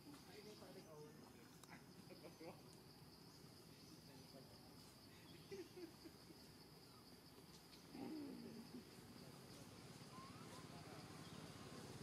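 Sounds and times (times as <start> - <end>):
high insect buzz: 1.9 - 12.0.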